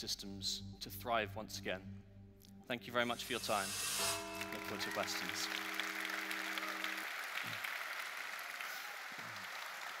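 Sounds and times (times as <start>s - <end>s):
audience applauding: 4.4s - 10.0s.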